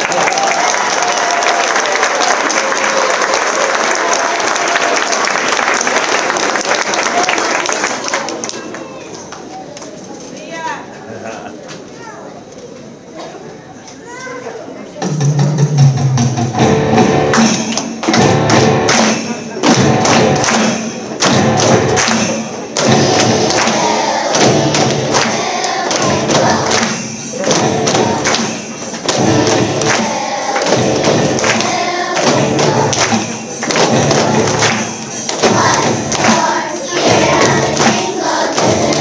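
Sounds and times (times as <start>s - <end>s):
accompaniment with thudding beat: 15.0s - 39.0s
children's choir singing: 22.7s - 39.0s.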